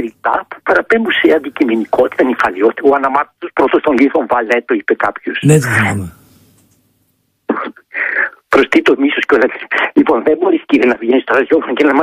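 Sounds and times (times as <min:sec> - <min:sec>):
man talking over phone line: 0:05.4 - 0:06.2.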